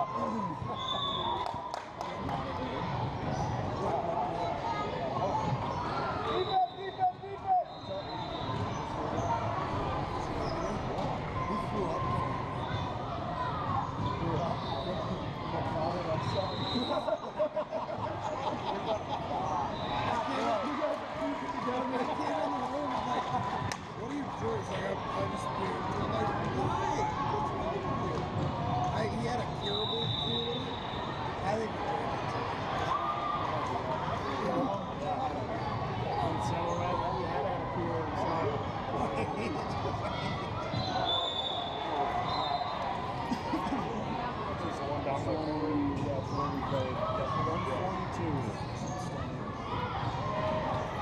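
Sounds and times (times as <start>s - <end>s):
chatter and calls of people: 0.0s - 51.0s.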